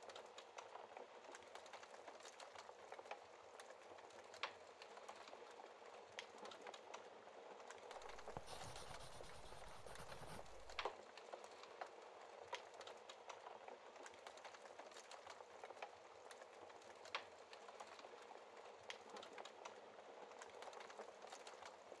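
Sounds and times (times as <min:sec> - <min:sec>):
rustling sound: 0:08.0 - 0:10.9.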